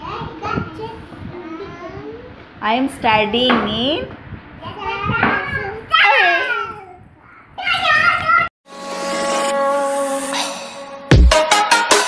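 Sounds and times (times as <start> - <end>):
young child talking: 4.6 - 8.5.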